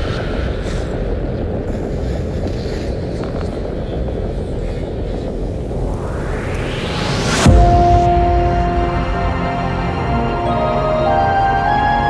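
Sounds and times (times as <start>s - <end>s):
low rumbling drone: 0.0s - 12.0s
rising whoosh: 5.5s - 12.0s.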